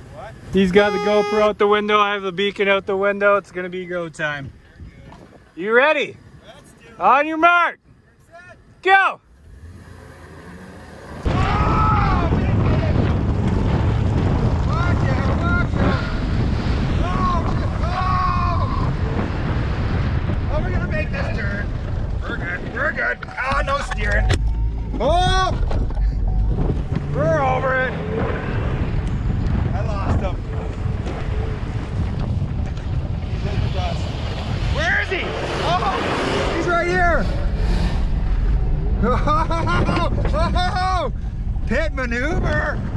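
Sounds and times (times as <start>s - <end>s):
engine and road rumble: 0.0s - 42.9s
wind in car cabin: 11.1s - 42.9s
people shouting and whooping: 11.2s - 12.8s, 17.0s - 19.1s.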